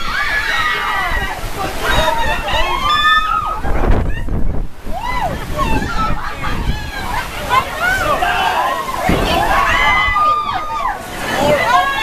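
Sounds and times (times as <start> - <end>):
heavy rain on a tent: 0.0 - 12.0
people whooping and shouting: 0.0 - 12.0.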